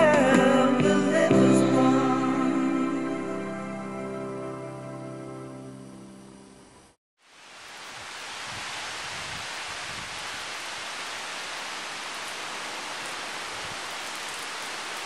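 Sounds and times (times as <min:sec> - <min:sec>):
rain falling on leafy trees: 0:07.2 - 0:15.0.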